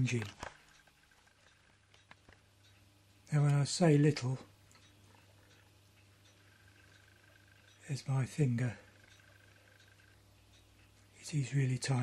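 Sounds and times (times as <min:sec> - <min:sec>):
faint low hum: 0:00.0 - 0:12.0
faint ticks: 0:00.0 - 0:12.0.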